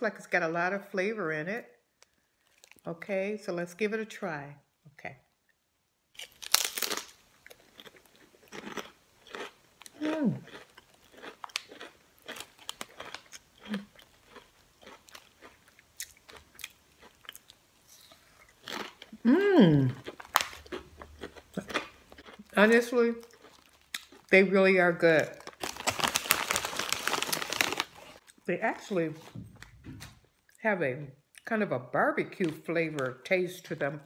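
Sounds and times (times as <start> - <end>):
chewing crisp crunches: 2.4 - 2.9, 6.2 - 24.3, 25.3 - 28.4
potato chip crunching: 2.4 - 2.9, 6.2 - 28.4.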